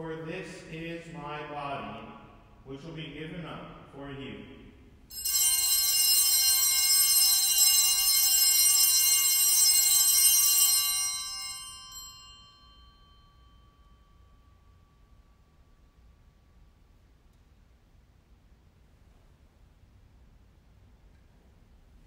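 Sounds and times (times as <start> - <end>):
small bells ringing: 5.1 - 15.9.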